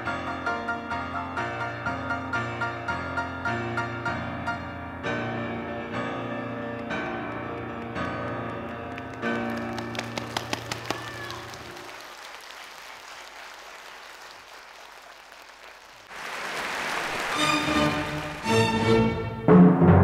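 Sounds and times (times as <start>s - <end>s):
piano chords: 0.0s - 10.6s, 16.9s - 20.0s.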